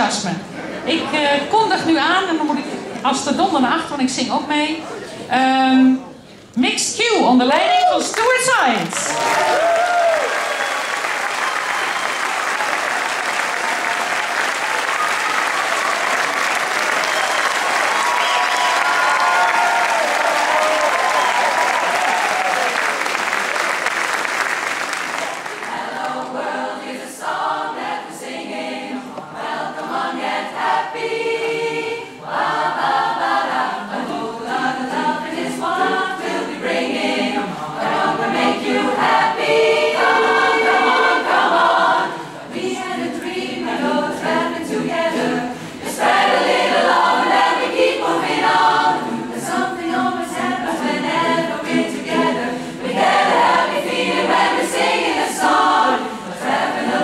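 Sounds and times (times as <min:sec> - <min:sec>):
audience applause: 0:08.1 - 0:26.2
women's chorus singing a cappella: 0:25.5 - 0:57.0.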